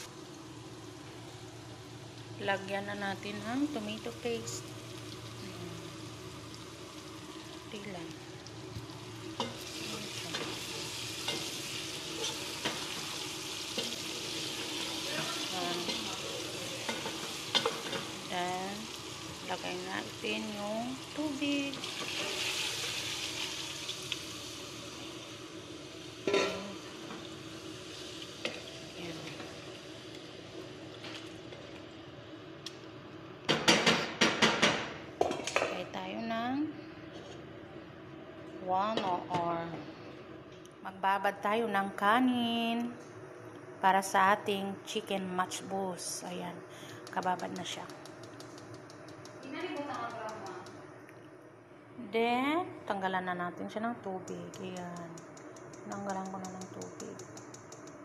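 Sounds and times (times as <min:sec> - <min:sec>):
food sizzling in a pot: 0:00.0 - 0:32.4, 0:44.0 - 0:51.0.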